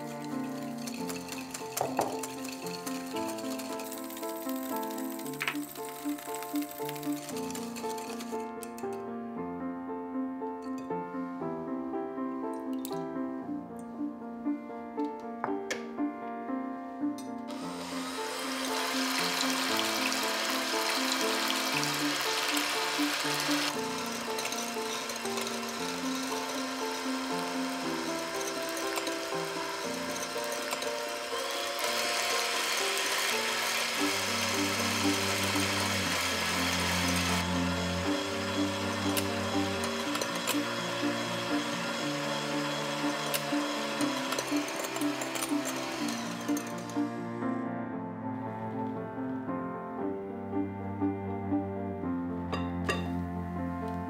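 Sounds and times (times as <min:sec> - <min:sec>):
electric hand mixer whirring: 0:00.0 - 0:08.9, 0:17.5 - 0:47.3
piano music: 0:00.0 - 0:54.0.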